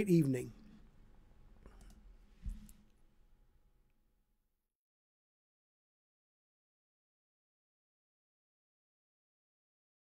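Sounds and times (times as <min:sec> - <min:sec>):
faint clicks: 0:01.6 - 0:03.0.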